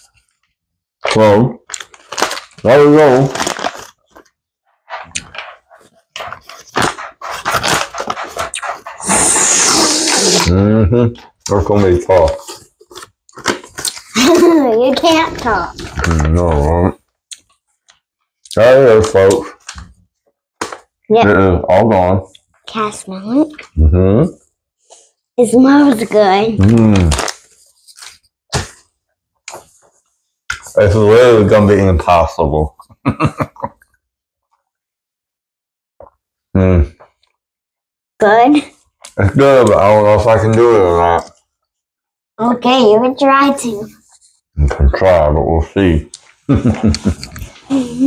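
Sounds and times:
foil pouch crinkling: 0:01.8 - 0:04.3
wet gum chewing: 0:04.1 - 0:10.5.

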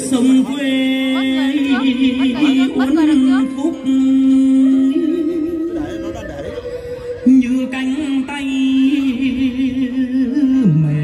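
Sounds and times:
person singing with ornament: 0:00.0 - 0:05.8.

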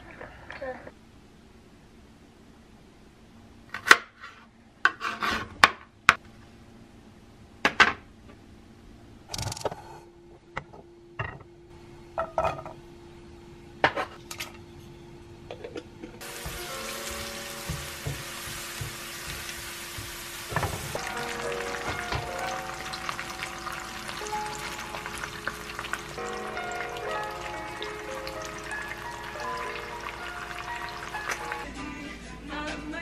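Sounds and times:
background music: 0:16.2 - 0:18.6, 0:20.9 - 0:33.0
food sizzling in hot oil: 0:16.2 - 0:31.7.

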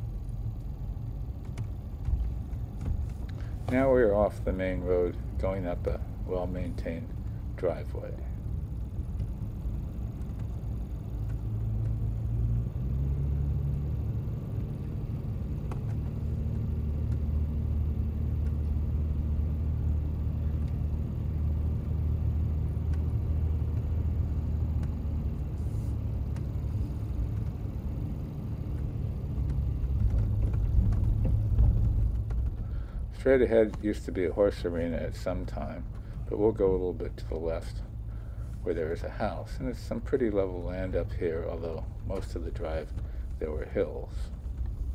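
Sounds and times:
car engine and tyres rumbling: 0:00.0 - 0:44.9.

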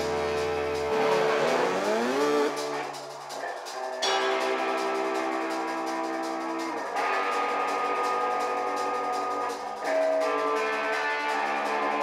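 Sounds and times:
drums and cymbals: 0:00.0 - 0:12.0
electric guitar and bass chords: 0:00.0 - 0:12.0.

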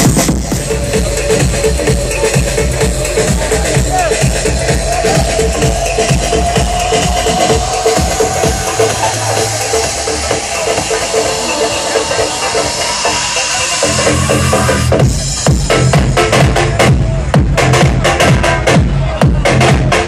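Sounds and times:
electronic dance music: 0:00.0 - 0:20.0
rising synth tone: 0:00.6 - 0:14.9.

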